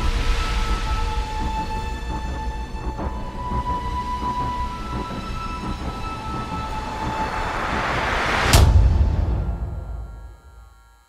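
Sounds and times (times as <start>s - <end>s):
sharp hit and deep boom: 8.4s - 10.7s.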